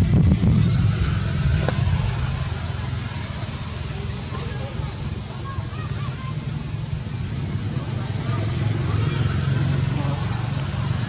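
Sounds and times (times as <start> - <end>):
low motor-like rumble: 0.0 - 11.0.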